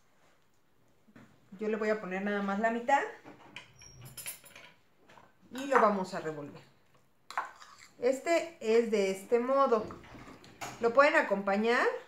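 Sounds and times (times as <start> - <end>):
utensils scraping ceramic bowls: 7.3 - 8.0.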